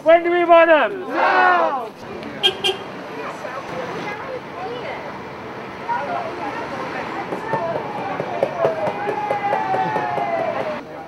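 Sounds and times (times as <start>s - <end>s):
street traffic: 0.0s - 11.0s
bus horn toots: 2.4s - 3.0s.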